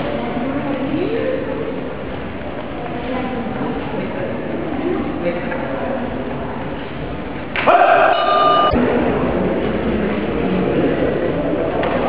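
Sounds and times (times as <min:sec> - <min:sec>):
murmur of sports hall: 0:00.0 - 0:12.0.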